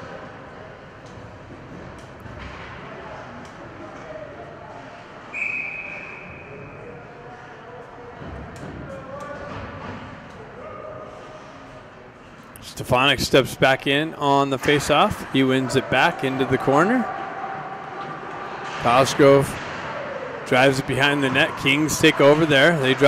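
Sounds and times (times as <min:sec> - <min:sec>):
referee whistle blast: 0:05.3 - 0:06.6.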